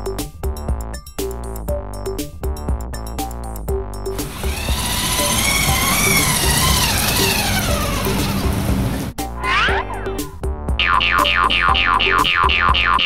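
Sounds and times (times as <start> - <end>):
quick rising glide effect: 4.2 - 10.4
electronic synth music: 4.2 - 13.0.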